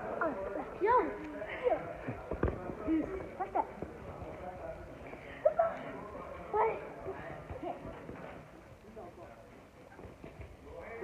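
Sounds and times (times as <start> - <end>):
faint children's voices: 5.3 - 11.0.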